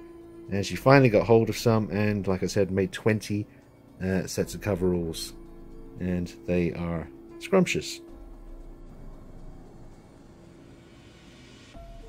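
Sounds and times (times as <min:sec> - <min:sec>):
background music: 0:00.0 - 0:12.0
hiss: 0:10.5 - 0:12.0.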